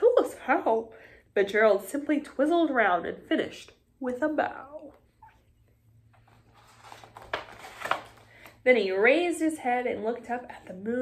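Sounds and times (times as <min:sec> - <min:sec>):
paper page rustling: 0:06.1 - 0:08.6.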